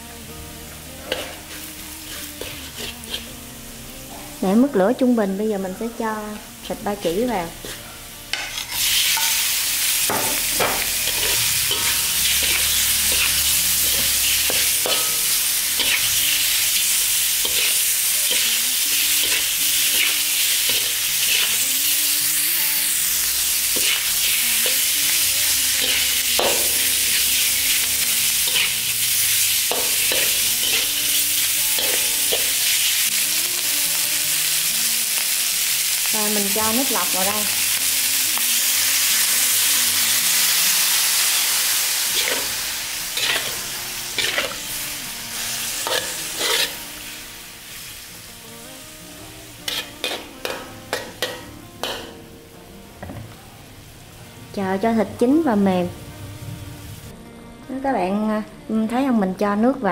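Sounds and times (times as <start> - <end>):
meat sizzling in hot oil: 0.8 - 52.6.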